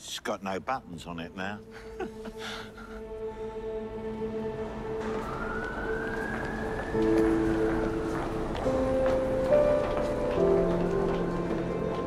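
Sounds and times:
film score held notes: 0.0 - 12.0.

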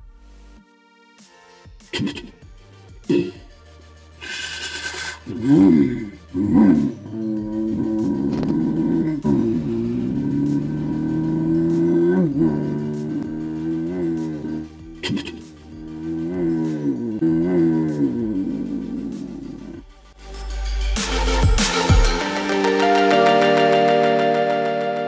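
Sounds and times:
man imitating engine hum: 1.9 - 3.5, 4.2 - 19.9.

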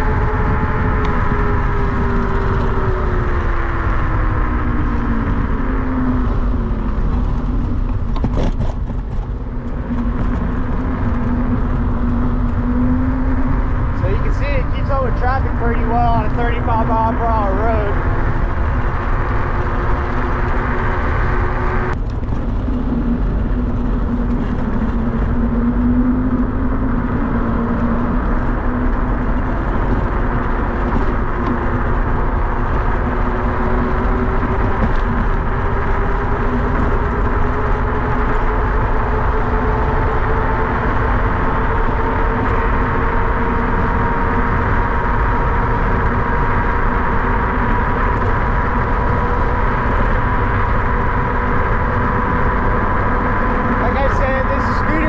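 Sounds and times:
wind and tyres on asphalt: 0.0 - 55.0.

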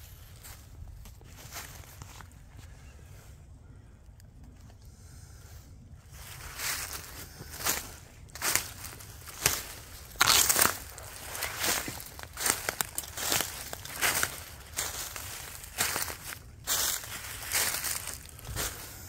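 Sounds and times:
footsteps crunching dry leaves: 0.0 - 2.8, 6.1 - 19.0.

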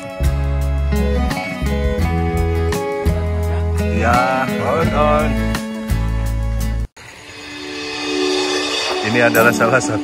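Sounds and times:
riser sound effect hiss: 7.0 - 10.0
steady held tones: 7.0 - 10.0.

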